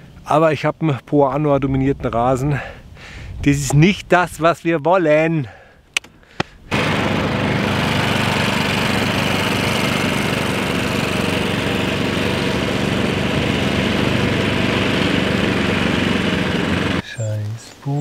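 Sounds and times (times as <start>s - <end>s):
lawn mower engine running: 6.7s - 17.0s
mower reel whirring through grass: 6.7s - 17.0s.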